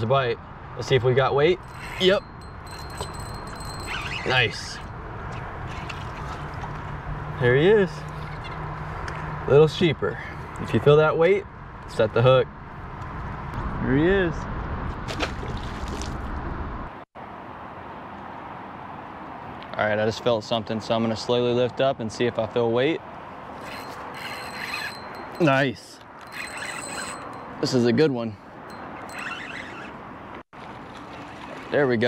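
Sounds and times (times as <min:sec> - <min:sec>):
water moving around boat: 0:01.6 - 0:07.4, 0:15.0 - 0:16.4, 0:26.2 - 0:27.6, 0:28.7 - 0:32.0
fish splashing at water surface: 0:30.6 - 0:31.8.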